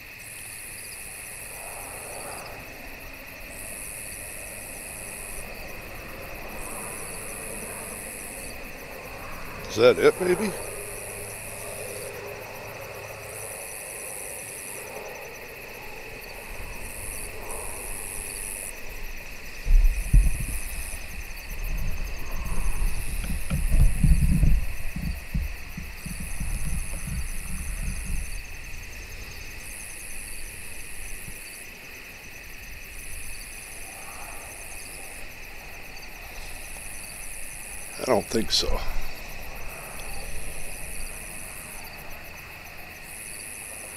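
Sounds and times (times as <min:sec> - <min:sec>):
insect buzzing: 0:00.0 - 0:43.9
insects trilling: 0:00.0 - 0:43.9
low rumbling: 0:19.6 - 0:29.6.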